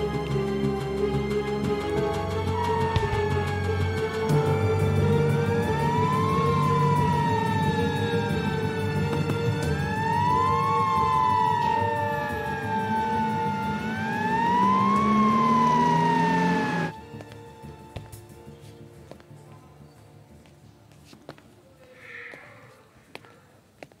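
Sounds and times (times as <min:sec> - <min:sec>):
ambulance siren wailing: 0:00.0 - 0:17.0.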